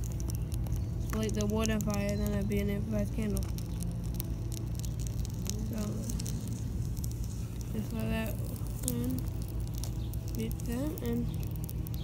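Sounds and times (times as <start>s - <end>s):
burning crayon crackling: 0.0s - 12.0s
low rumble: 0.0s - 12.0s.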